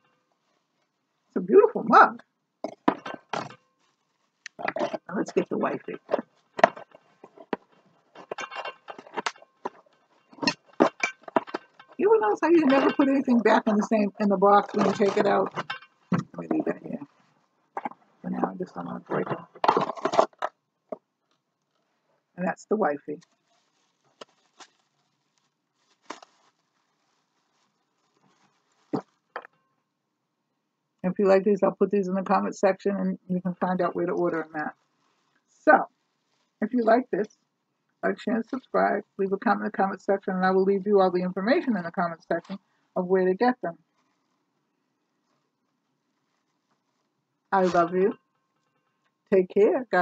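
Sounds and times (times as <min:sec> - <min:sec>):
cardboard and plastic crinkling: 0:02.7 - 0:05.0, 0:19.2 - 0:20.5, 0:23.3 - 0:29.5.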